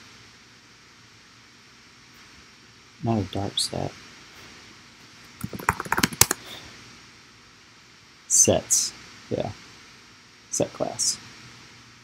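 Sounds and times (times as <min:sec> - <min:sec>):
computer keyboard typing: 0:05.4 - 0:06.5.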